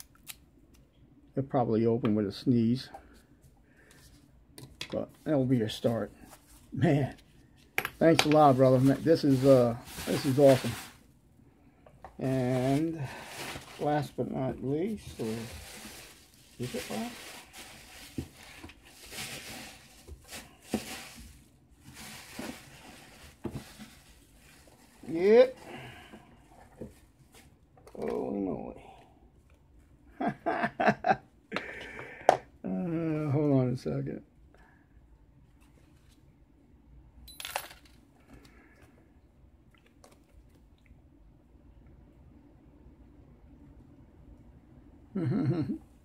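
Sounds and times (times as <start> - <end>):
faint handling sounds: 2.0 - 30.0, 35.4 - 36.4
wrapping rustling: 5.0 - 11.1, 12.2 - 27.6.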